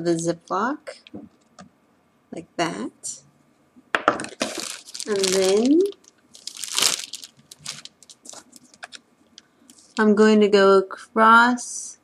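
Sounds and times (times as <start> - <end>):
plastic bag crinkling: 4.2 - 9.0.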